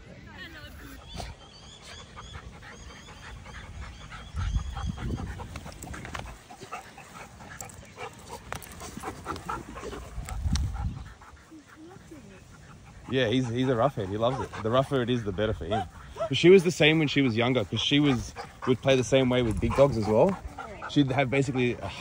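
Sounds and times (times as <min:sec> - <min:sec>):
dogs panting: 0:00.0 - 0:22.0
dog low rumbling growl: 0:01.0 - 0:11.3
dogs scuffling: 0:04.9 - 0:12.2.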